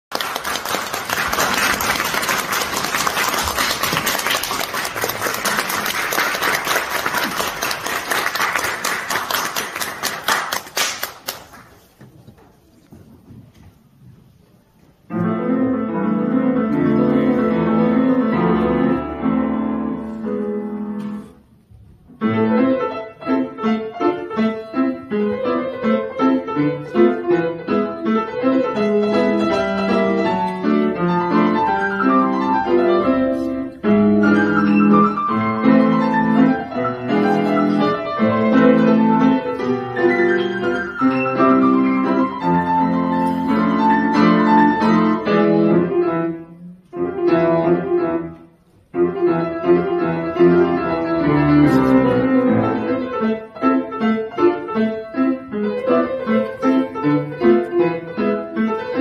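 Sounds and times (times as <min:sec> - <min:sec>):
grand piano playing fast: 0:00.1 - 0:11.2, 0:15.1 - 0:21.4, 0:22.0 - 0:59.0
audience applause: 0:00.1 - 0:11.8.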